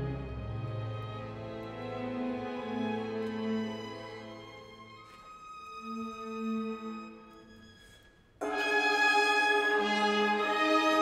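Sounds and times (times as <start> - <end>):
symphony orchestra playing: 0.0 - 11.0.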